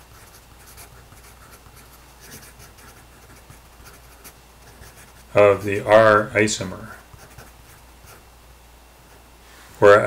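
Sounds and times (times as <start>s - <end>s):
pencil scratching on paper: 0.0s - 6.0s, 7.1s - 8.2s.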